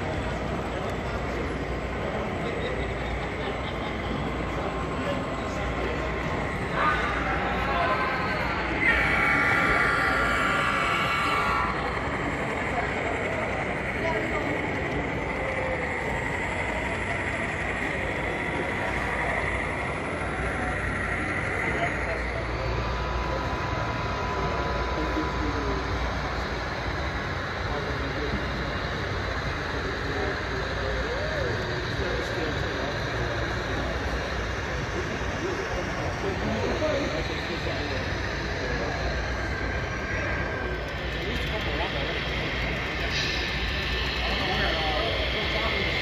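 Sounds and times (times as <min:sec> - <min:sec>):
crowd chatter: 0:00.0 - 0:46.0
model trains running: 0:00.0 - 0:46.0.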